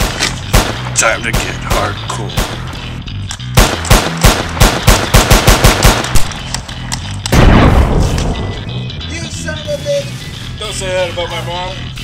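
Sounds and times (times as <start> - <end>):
gunshot sound effects: 0.0 - 2.7, 3.6 - 6.3, 7.3 - 8.6
loud blast: 7.3 - 9.0.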